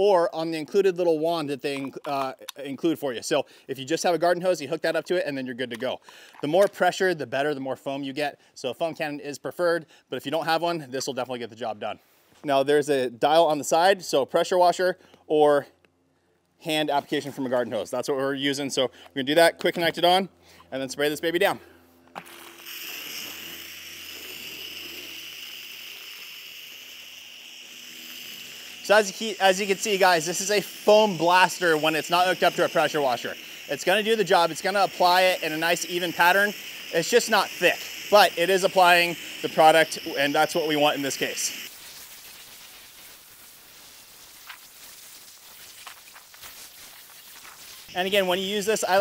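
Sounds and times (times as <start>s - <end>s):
foam spray hissing on car paint: 22.2s - 49.0s.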